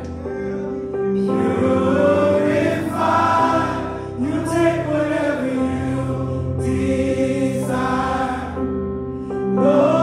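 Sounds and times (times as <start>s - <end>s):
choir singing gospel song: 0.0s - 0.6s, 1.2s - 8.8s, 9.5s - 10.0s.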